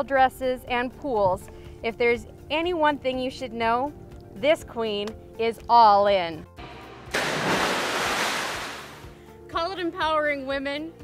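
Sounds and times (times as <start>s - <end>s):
big splash into swimming pool: 7.1s - 9.2s.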